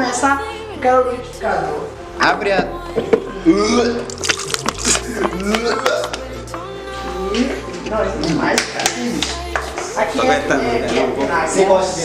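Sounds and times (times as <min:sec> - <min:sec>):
background music: 0:00.0 - 0:12.0
squeeze bottle squelching: 0:04.1 - 0:06.2.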